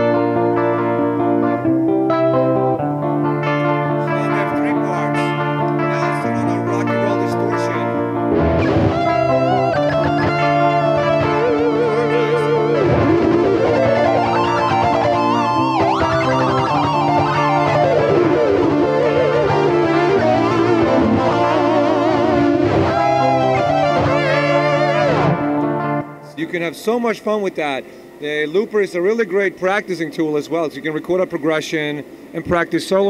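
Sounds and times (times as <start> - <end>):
electric guitar lead line: 0.0 - 33.0
looped electric guitar chords: 0.0 - 33.0.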